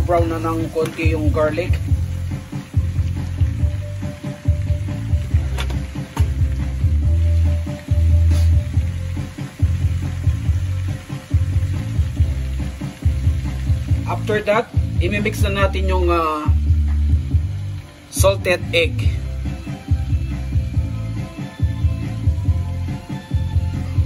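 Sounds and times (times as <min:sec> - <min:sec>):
butter and garlic sizzling in pan: 0:00.0 - 0:18.7
music with heavy bass: 0:00.0 - 0:24.0.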